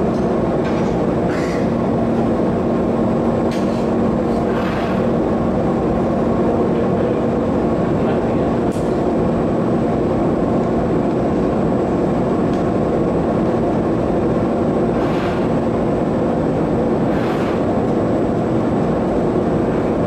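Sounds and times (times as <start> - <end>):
constant low hum: 0.0 - 20.0
gas burner rushing: 3.4 - 5.8, 14.7 - 20.0.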